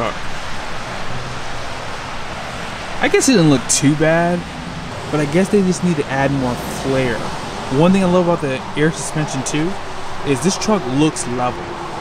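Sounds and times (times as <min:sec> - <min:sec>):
rain hiss: 0:00.0 - 0:12.0.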